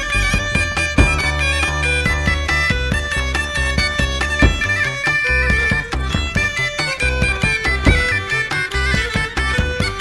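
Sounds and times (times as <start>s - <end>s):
instrumental folk band music: 0.0s - 10.0s.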